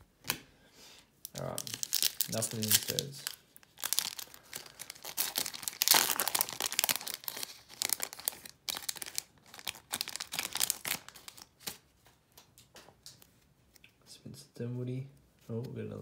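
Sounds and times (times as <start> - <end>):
foil wrapper tearing and crinkling: 1.3 - 11.8.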